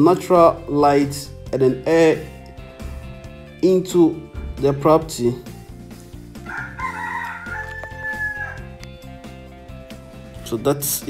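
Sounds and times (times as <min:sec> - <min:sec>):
background music: 0:00.0 - 0:11.0
rooster crowing: 0:06.4 - 0:08.8.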